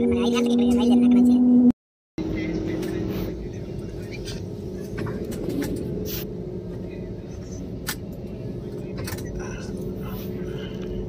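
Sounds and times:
jet airliner cabin rumble: 0:02.2 - 0:11.0.

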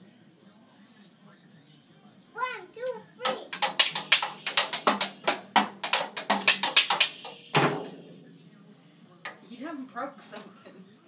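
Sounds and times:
toy drum strikes: 0:03.2 - 0:08.0.

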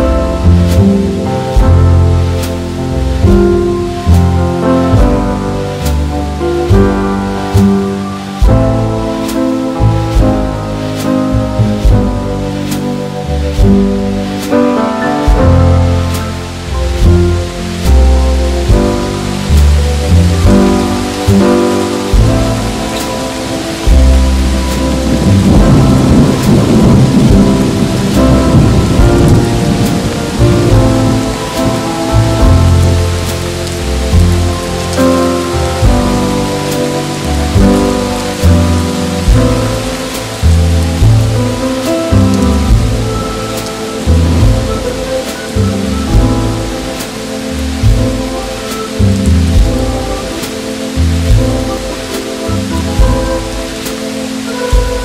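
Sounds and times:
slow jazz with walking bass: 0:00.0 - 0:55.0
steady rain: 0:00.0 - 0:55.0
thunder rolling: 0:00.0 - 0:55.0.

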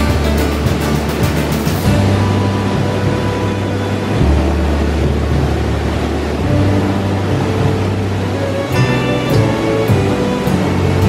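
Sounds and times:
background music with bass: 0:00.0 - 0:11.0
river rushing over cascade: 0:00.0 - 0:11.0.

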